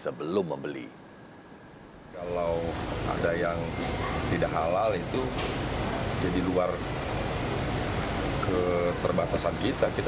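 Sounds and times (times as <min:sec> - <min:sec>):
man speaking: 0:00.0 - 0:01.0, 0:02.1 - 0:05.4, 0:08.4 - 0:10.0
room noise hiss: 0:00.0 - 0:10.0.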